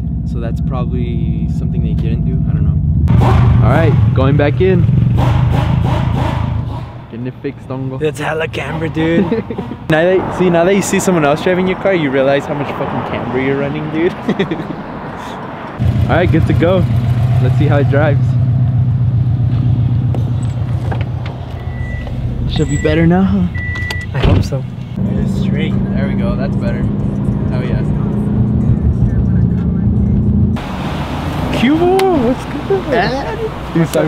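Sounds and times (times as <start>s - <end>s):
car engine and exhaust: 0.0s - 34.0s.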